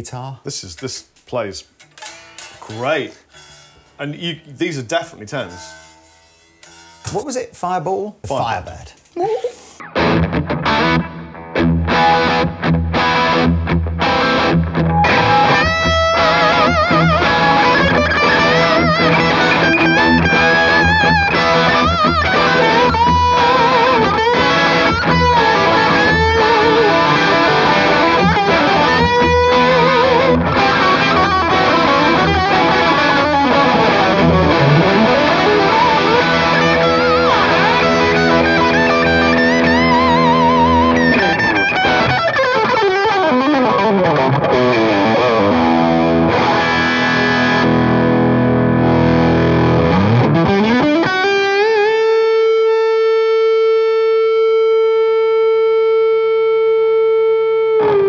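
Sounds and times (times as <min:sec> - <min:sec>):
overdriven electric guitar lead: 0:09.6 - 0:58.0.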